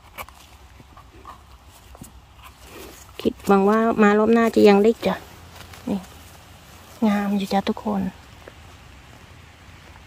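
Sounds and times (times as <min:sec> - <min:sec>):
knife scraping mushroom stem: 0:00.0 - 0:03.8
low steady rumble: 0:00.0 - 0:10.0.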